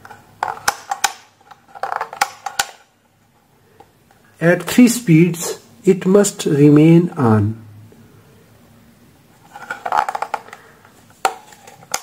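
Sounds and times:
handling noise: 0:00.0 - 0:04.4, 0:09.3 - 0:12.0.

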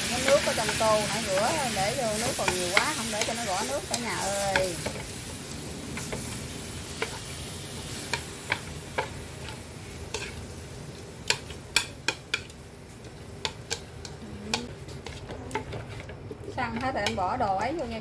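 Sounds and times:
food sizzling: 0:00.0 - 0:18.0
chopsticks clicking on metal wok: 0:00.1 - 0:05.1, 0:11.2 - 0:15.7, 0:16.7 - 0:17.9.

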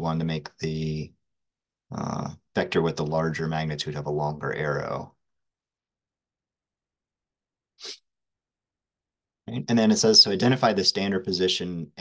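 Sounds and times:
quick sniff or sharp breath: 0:07.8 - 0:08.0.

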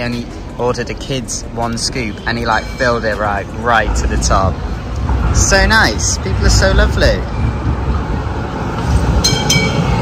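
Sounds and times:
tram rumbling on rails: 0:00.0 - 0:10.0
high-pitched tram bell rings: 0:01.8 - 0:04.4, 0:09.2 - 0:10.0.

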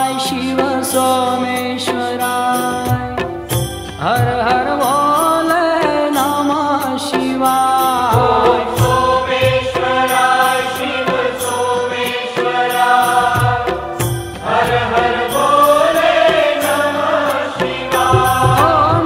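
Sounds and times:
voices chanting: 0:08.2 - 0:19.0.

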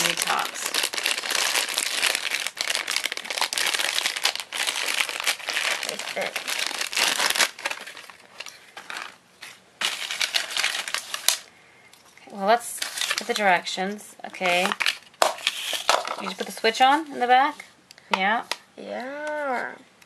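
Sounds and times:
plastic packaging crinkling: 0:00.0 - 0:11.5, 0:12.6 - 0:17.0.

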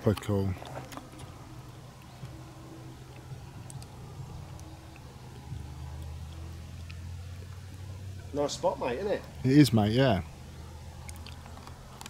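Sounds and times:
van engine idling: 0:00.0 - 0:12.0.

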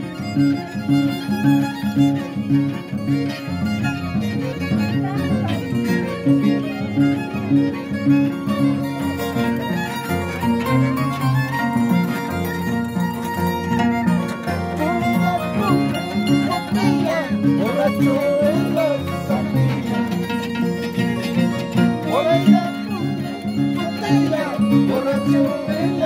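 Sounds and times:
harp plucked: 0:00.0 - 0:26.0
violin melody: 0:00.0 - 0:26.0.

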